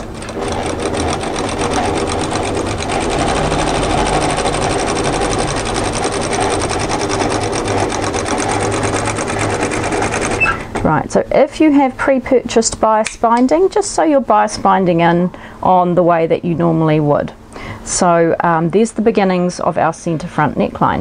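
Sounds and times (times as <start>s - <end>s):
sewing machine running: 0.0s - 10.8s.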